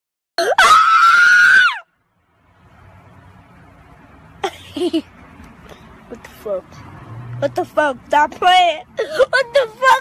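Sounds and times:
child screaming: 0.4s - 1.9s.

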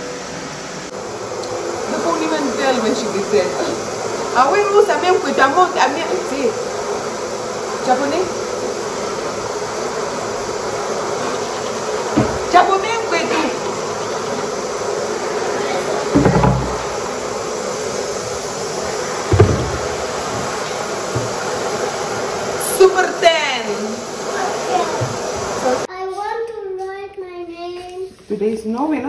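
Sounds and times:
buzzing hiss: 0.0s - 25.9s
knocks on countertop: 12.1s - 12.5s, 16.1s - 16.9s, 19.3s - 20.5s.

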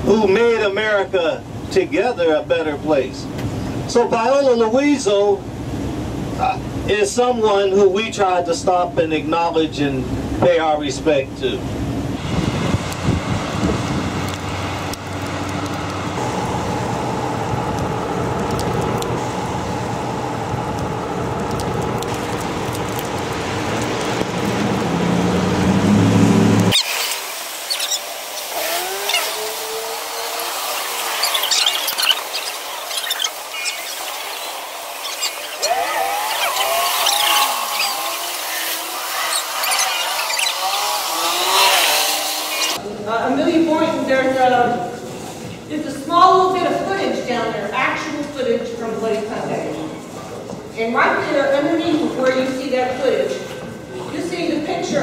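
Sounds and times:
traffic on wet road: 11.5s - 42.8s
group calls and voices: 30.0s - 44.1s.

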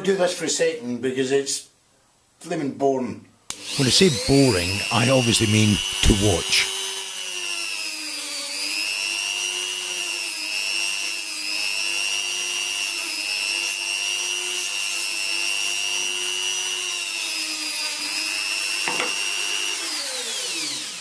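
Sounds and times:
rotary tool sanding wood: 3.6s - 21.0s.

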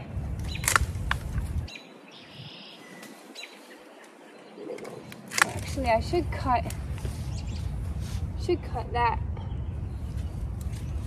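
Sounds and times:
wind rumble on microphone: 0.0s - 11.0s
pruners snipping stems: 0.4s - 1.6s, 4.8s - 7.1s.

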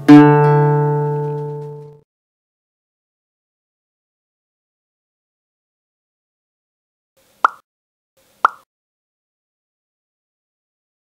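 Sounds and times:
pop sound effect: 7.4s - 7.6s, 8.4s - 8.7s.

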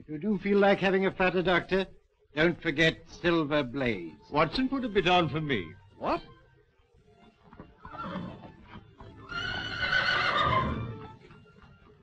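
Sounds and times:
hooves clopping on cobbles: 7.2s - 12.0s
horse neighing: 7.8s - 11.1s.

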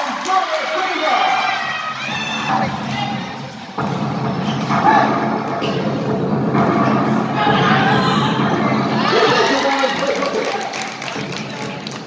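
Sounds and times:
crowd din of voices: 0.0s - 12.0s
spectators shouting: 7.3s - 10.8s.

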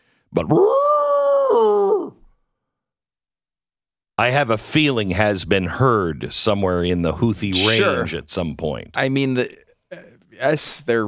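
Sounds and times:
man imitating animal call: 7.5s - 8.1s.

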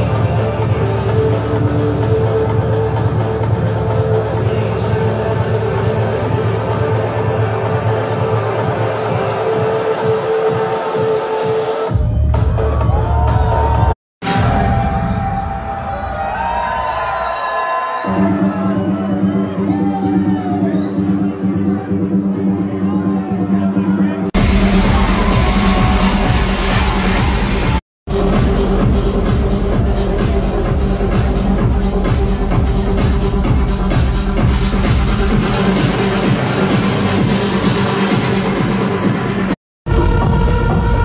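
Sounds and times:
steady bass: 0.0s - 10.2s, 21.8s - 41.0s
electronic trance music: 0.0s - 14.8s, 21.8s - 41.0s
heavy bass: 0.0s - 17.0s, 18.1s - 41.0s.

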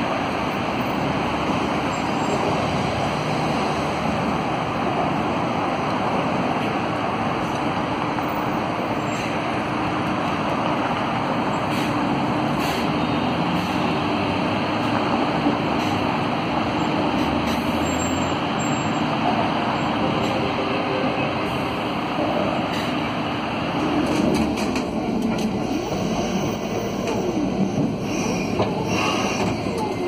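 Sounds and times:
bus driving past: 0.0s - 30.0s
city road traffic: 0.0s - 30.0s.

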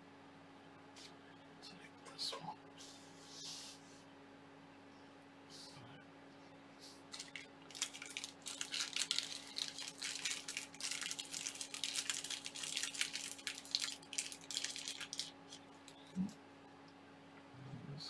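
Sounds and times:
plastic packaging crinkling: 7.1s - 16.1s.

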